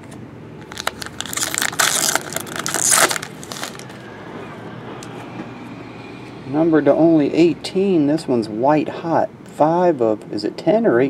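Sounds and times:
foil wrapper tearing and crinkling: 0:00.6 - 0:04.0.

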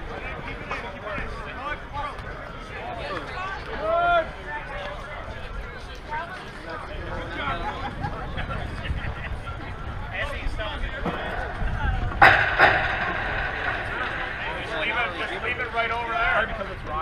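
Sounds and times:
people talking indistinctly: 0:00.0 - 0:17.0
sharp knocks: 0:12.2 - 0:15.9.

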